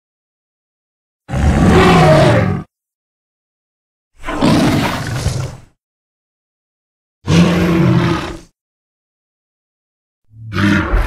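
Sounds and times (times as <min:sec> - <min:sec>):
dinosaur roar: 0:01.3 - 0:02.7, 0:04.2 - 0:05.7, 0:07.3 - 0:08.5, 0:10.3 - 0:11.0.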